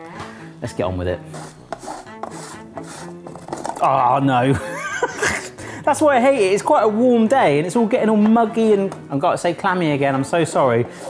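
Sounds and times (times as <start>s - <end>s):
chocolate scraping on metal grater: 1.2s - 3.9s, 10.3s - 11.0s.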